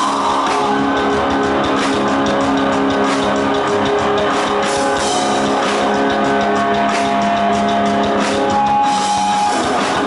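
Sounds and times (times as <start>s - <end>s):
drum kit: 0.0s - 10.0s
electric guitar sustained notes: 0.0s - 10.0s.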